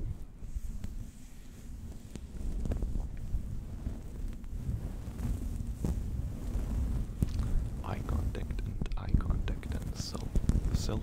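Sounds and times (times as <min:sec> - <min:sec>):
fabric rubbing against microphone: 0:00.0 - 0:11.0
small crackles and clicks: 0:00.0 - 0:11.0.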